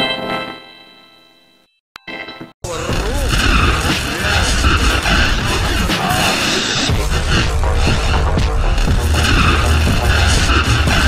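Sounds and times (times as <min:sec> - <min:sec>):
distorted cartoon audio: 0:02.6 - 0:11.0
heavy low rumble: 0:02.7 - 0:11.0.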